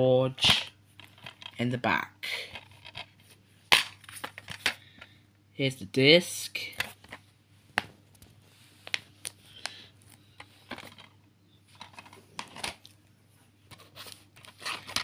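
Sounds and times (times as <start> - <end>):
plastic cases clicking and rustling: 0.4 - 1.6, 2.5 - 5.1, 10.4 - 12.9, 13.7 - 15.0.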